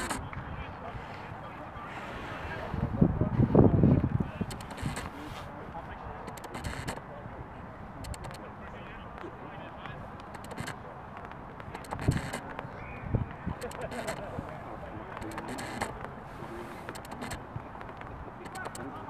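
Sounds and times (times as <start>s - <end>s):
outdoor background noise: 0.0s - 19.0s.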